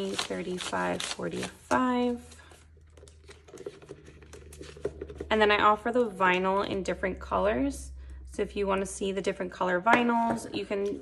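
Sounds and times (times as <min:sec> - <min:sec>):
banknotes crinkling: 0:00.0 - 0:04.8.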